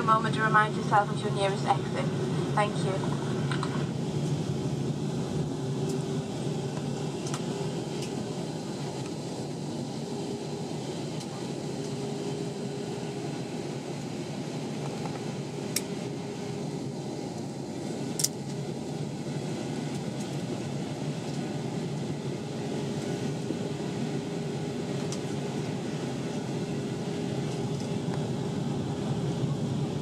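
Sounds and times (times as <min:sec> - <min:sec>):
faint hum: 0:00.0 - 0:30.0
jet engines rumbling: 0:00.0 - 0:30.0.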